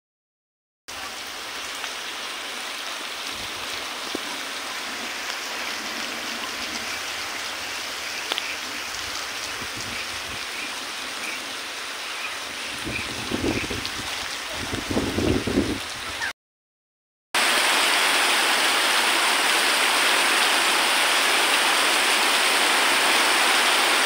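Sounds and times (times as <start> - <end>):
rain falling on water: 0.9 - 16.3, 17.4 - 24.0.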